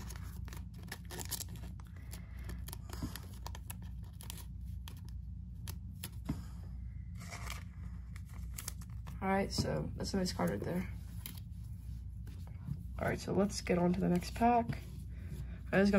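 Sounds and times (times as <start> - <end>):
plastic card sleeve crinkling: 0.0 - 6.2, 7.1 - 9.6.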